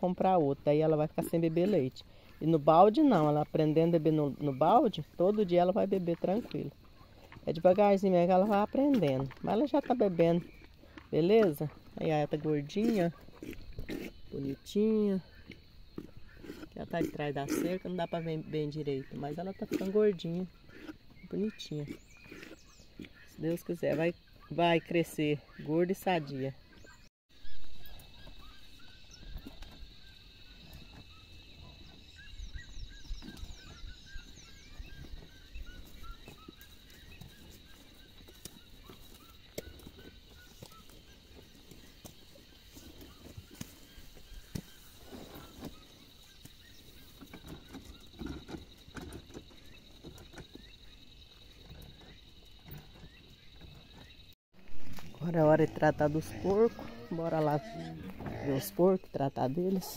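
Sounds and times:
farm fowl calling: 55.4s - 58.9s.

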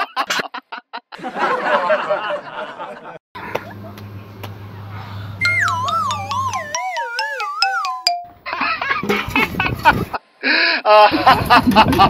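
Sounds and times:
warbling tone sliding down: 4.9s - 8.4s.

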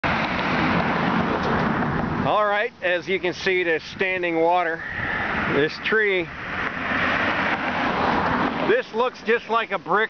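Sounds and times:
vehicle passing by: 4.8s - 8.8s.

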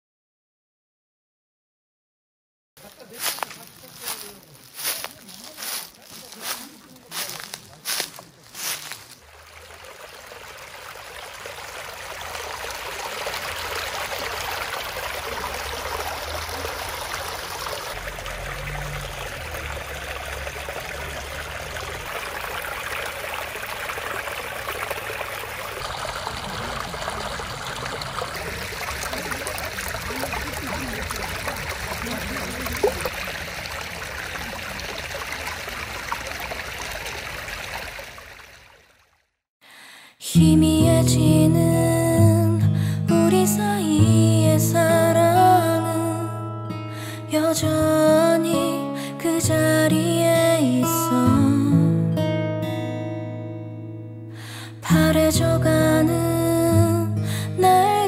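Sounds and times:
water rushing over rocks: 8.3s - 38.8s.

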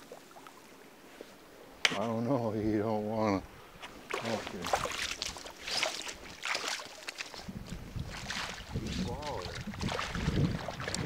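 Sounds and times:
shallow water flowing: 0.0s - 11.0s
sharp click: 1.8s - 2.1s.

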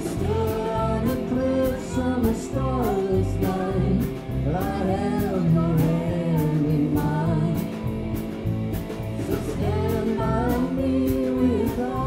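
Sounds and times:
drum kit with cymbal hits: 0.0s - 12.0s
electric bass: 0.0s - 12.0s
electric guitar: 0.0s - 12.0s.

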